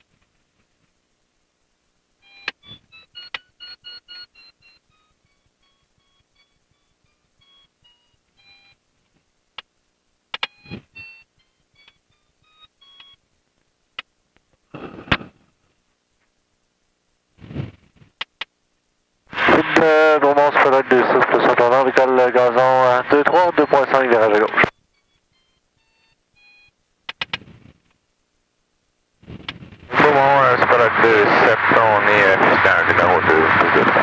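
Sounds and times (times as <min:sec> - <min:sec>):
variometer beeping: 0:02.2 - 0:08.8, 0:10.4 - 0:13.2
sharp clicks: 0:02.4 - 0:03.5, 0:10.3 - 0:10.8, 0:18.1 - 0:18.5, 0:27.1 - 0:27.5.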